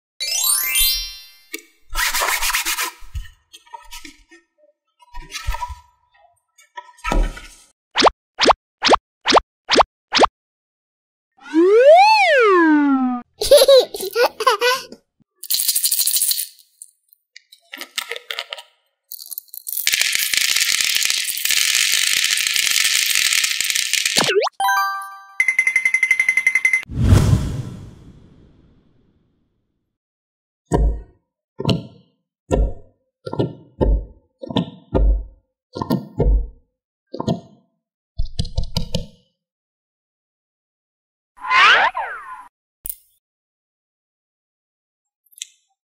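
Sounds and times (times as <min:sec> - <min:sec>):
rising cartoon sound effect: 0:11.4 - 0:13.3, 0:41.4 - 0:42.5
candies rattling onto plastic tray: 0:15.4 - 0:16.6, 0:17.7 - 0:24.2.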